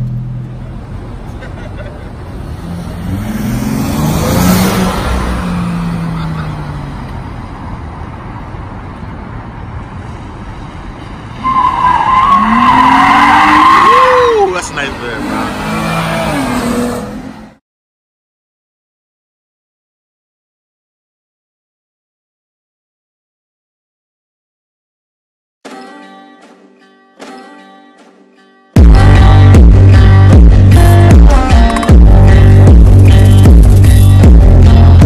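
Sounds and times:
car engine idling and revving: 0.0s - 17.6s, 28.8s - 35.0s
tires squealing: 10.6s - 17.5s.

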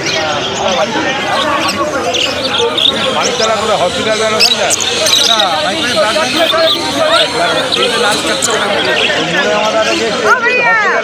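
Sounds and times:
budgerigars chattering: 0.0s - 10.3s.

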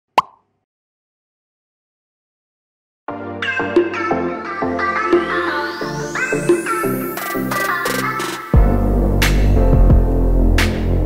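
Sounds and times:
plop sound effect: 0.2s - 0.4s.

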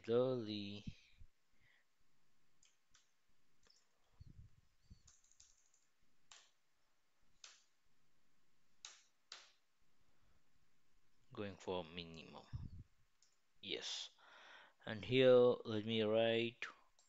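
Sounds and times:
computer keyboard keystrokes: 2.6s - 4.0s, 5.0s - 6.6s, 7.4s - 7.7s, 8.8s - 9.6s.

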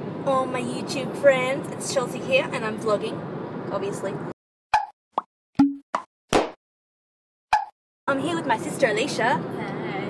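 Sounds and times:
popping sound effects: 4.7s - 6.6s, 7.5s - 7.8s.

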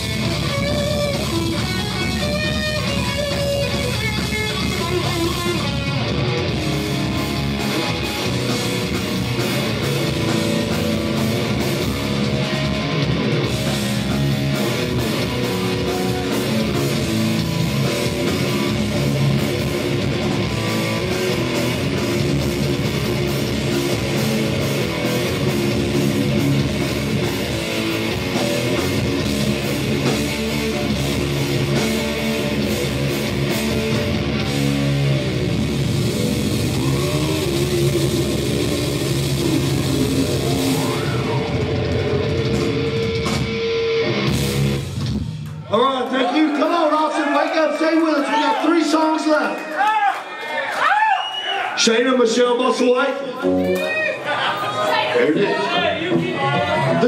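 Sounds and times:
distorted electric guitar: 0.0s - 45.5s
electric bass: 0.0s - 45.6s
drum kit: 0.0s - 45.7s.

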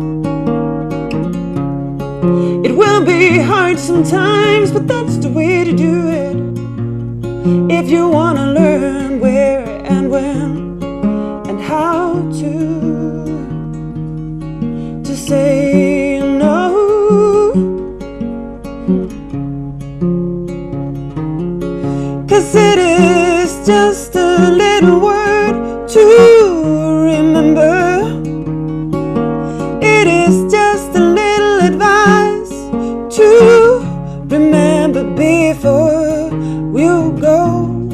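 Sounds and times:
acoustic guitar: 0.0s - 37.9s
woman singing with vibrato: 2.4s - 6.5s, 7.6s - 10.7s, 11.4s - 13.6s, 15.0s - 17.7s, 22.2s - 28.2s, 29.6s - 37.9s.

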